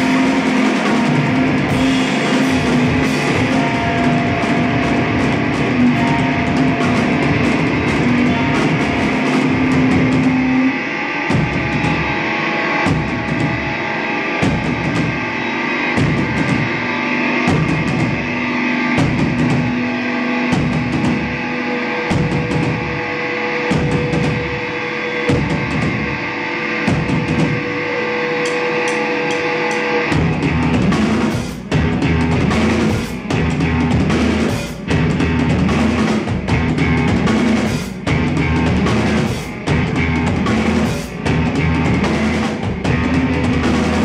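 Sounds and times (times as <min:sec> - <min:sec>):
drum kit: 0:00.0 - 0:44.0
electric guitar: 0:00.0 - 0:44.0.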